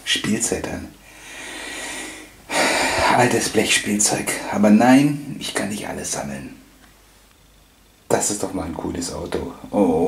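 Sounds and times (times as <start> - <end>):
man speaking: 0.0 - 1.0, 2.6 - 6.6, 8.1 - 10.0
man breathing: 1.0 - 3.3.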